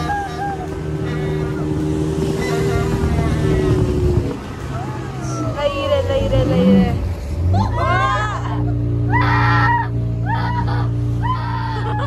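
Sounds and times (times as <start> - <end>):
motorboat engine rumbling: 0.0 - 12.0.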